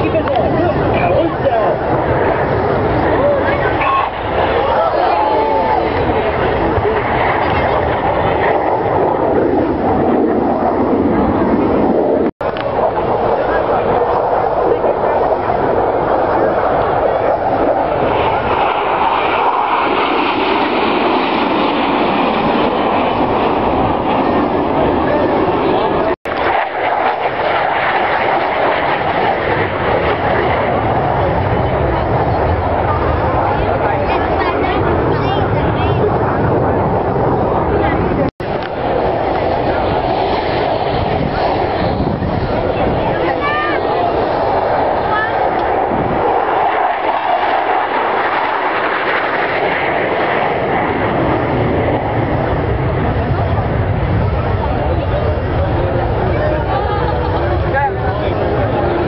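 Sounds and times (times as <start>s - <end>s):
jet engines roaring: 0.0s - 59.0s.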